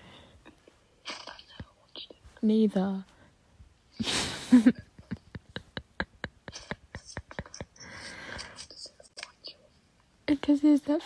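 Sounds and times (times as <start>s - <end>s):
person whispering: 1.0s - 3.1s
short breaths: 7.8s - 8.7s.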